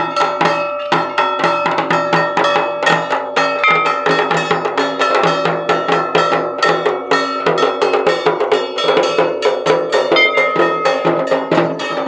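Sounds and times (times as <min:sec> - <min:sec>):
drums beaten in fast rhythm: 0:00.0 - 0:12.0
small gong ringing: 0:03.6 - 0:04.7, 0:09.9 - 0:12.0.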